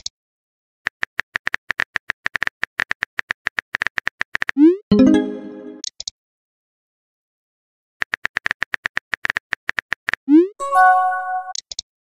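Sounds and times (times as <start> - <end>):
chat message chime: 4.9 - 5.8, 10.6 - 11.5.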